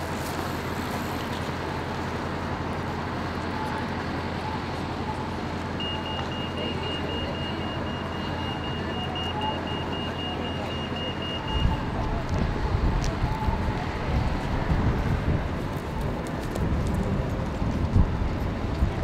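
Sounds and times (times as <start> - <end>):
city street traffic: 0.0 - 19.0.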